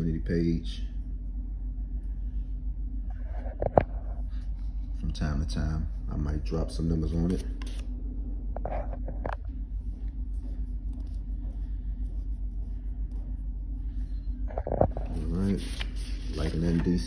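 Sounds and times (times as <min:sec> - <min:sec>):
low background hum: 0:00.0 - 0:17.0.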